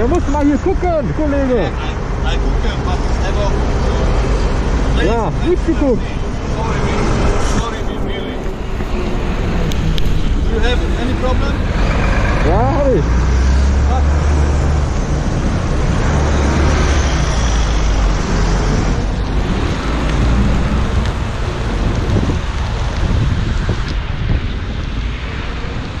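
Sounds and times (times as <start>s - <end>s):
road traffic: 0.0s - 26.0s
wind rush on microphone: 0.0s - 26.0s.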